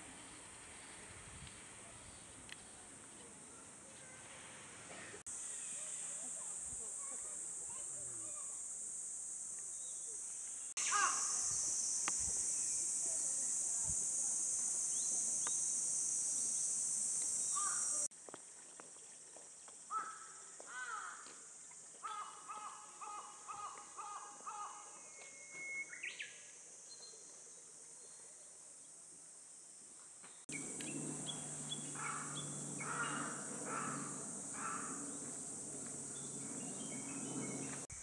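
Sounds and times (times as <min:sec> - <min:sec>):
cicadas droning: 0:05.2 - 0:38.0
crows cawing: 0:19.9 - 0:21.3, 0:22.0 - 0:24.8, 0:31.9 - 0:35.3
birds calling: 0:30.5 - 0:35.3.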